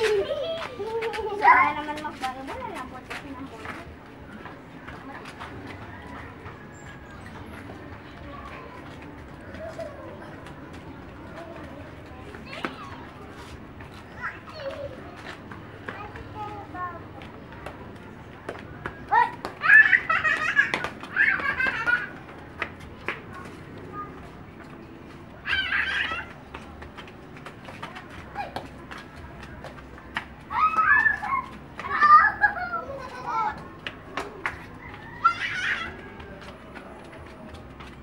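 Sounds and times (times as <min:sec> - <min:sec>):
young children playing: 0:00.0 - 0:38.0.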